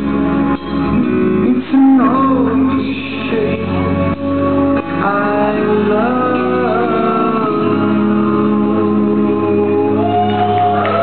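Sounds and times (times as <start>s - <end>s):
live rock band playing: 0.0s - 11.0s
man singing long notes: 1.0s - 11.0s.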